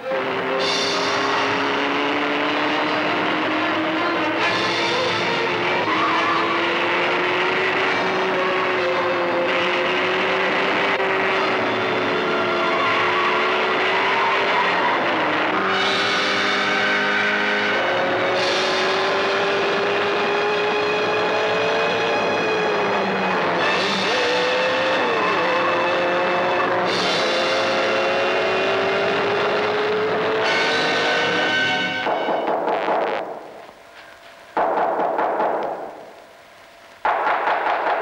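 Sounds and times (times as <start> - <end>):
car engine running hard: 0.0 - 32.2.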